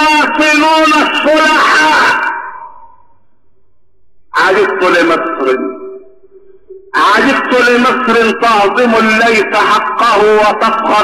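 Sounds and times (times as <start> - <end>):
man preaching: 0.0 - 2.8, 4.3 - 6.0, 7.0 - 11.0.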